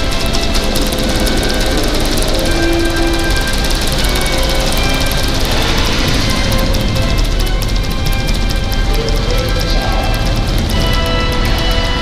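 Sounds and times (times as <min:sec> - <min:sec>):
deep rocket rumble: 0:00.0 - 0:12.0
dramatic music: 0:00.0 - 0:12.0.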